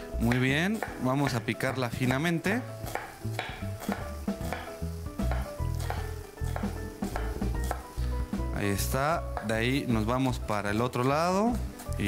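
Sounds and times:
background music: 0.0 - 12.0
knife chopping on cutting board: 0.2 - 1.4, 2.8 - 8.0.

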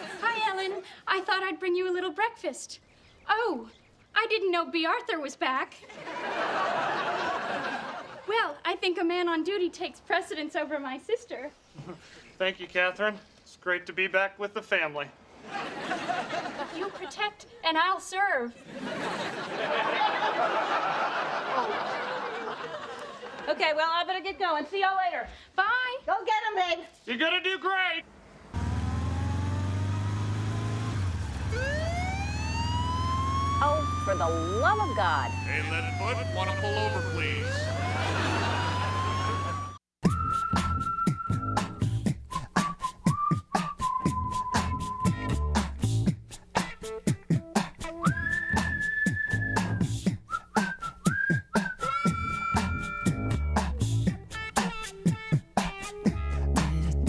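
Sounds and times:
vehicle engine running: 28.1 - 38.6
bass: 28.5 - 57.0
police siren wailing: 28.6 - 39.8
whistled melody: 33.6 - 46.0, 47.8 - 54.0
steady drum beat: 40.0 - 57.0.

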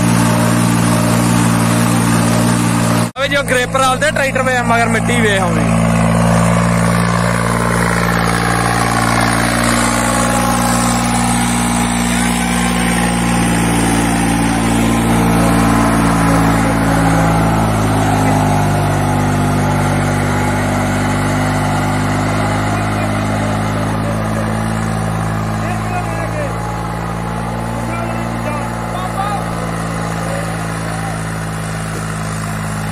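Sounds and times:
harrow pulled through dry soil: 0.0 - 32.9
tractor diesel engine droning: 0.0 - 32.9.

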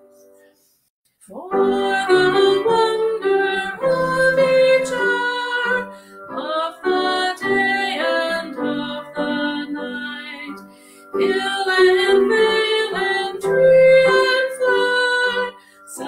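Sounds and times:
piano accompaniment: 0.0 - 0.6, 1.3 - 16.0
person singing a hymn: 1.3 - 16.0.

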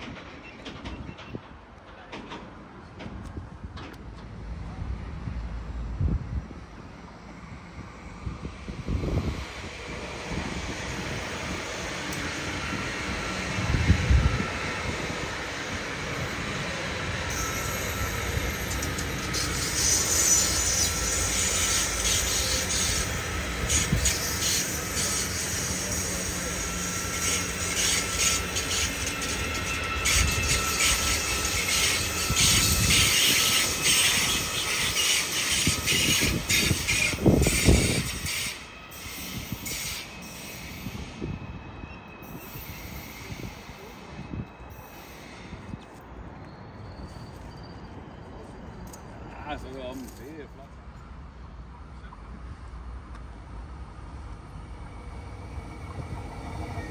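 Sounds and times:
train wheels rumbling on rail: 0.0 - 51.5, 52.4 - 56.9
wind buffeting microphone: 5.0 - 17.2, 32.1 - 38.4.

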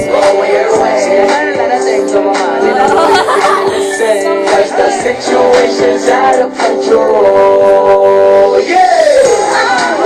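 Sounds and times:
song with singing voice: 0.0 - 10.0.

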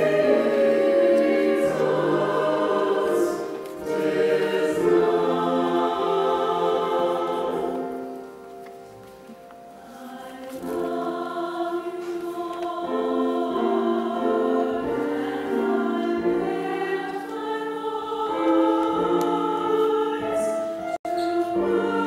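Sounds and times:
choir singing in parts: 0.0 - 8.4, 9.8 - 22.0.

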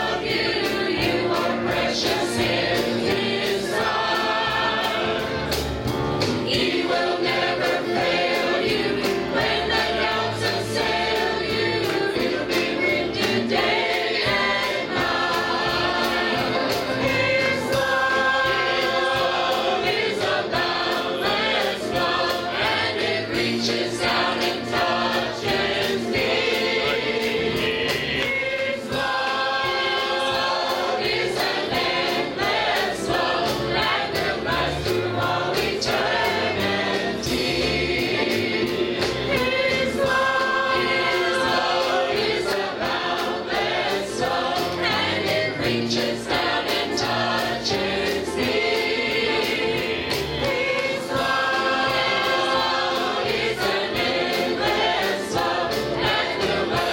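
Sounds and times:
choir singing gospel song: 0.0 - 56.9.

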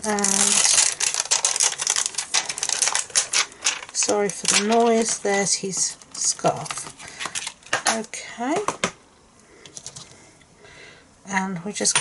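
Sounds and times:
clear plastic crackling: 0.0 - 8.8.

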